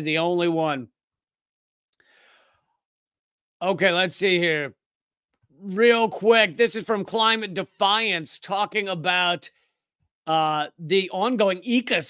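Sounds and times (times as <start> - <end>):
faint exhaled breath: 2.0 - 2.8.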